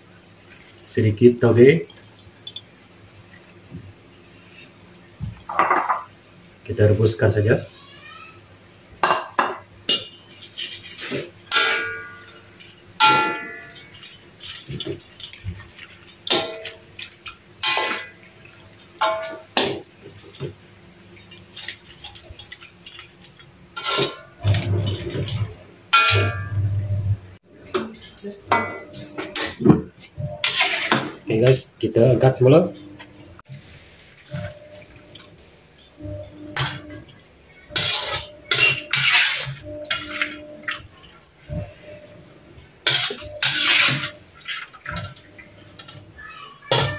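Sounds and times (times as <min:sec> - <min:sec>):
metal utensils clinking on wok: 0:09.9 - 0:14.6.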